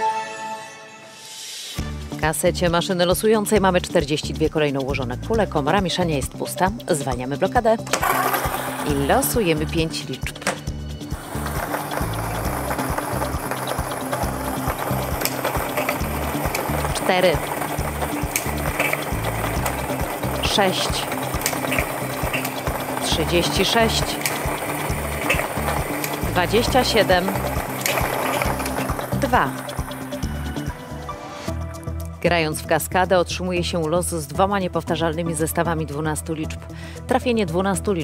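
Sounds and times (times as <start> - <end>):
background music with bassline: 1.8 - 38.0
lottery balls tumbling and clattering: 7.9 - 9.6, 10.3 - 30.8.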